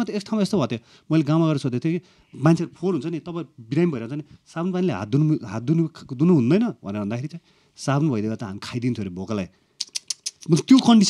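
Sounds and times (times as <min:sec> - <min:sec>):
man talking: 0:00.0 - 0:09.5, 0:10.4 - 0:11.0
sharp clicks: 0:09.8 - 0:11.0.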